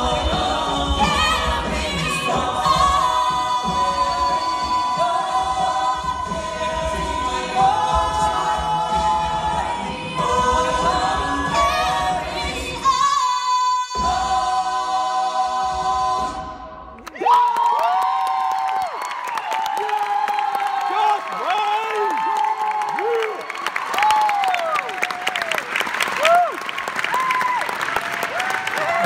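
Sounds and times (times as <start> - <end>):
a cappella group singing: 0.0 - 17.0
audience cheering and applause: 17.0 - 29.0.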